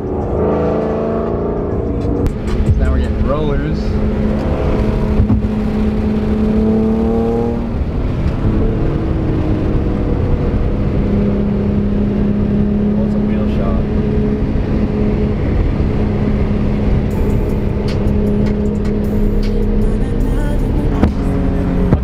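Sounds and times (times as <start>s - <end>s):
car engine from inside cabin: 0.0s - 22.0s.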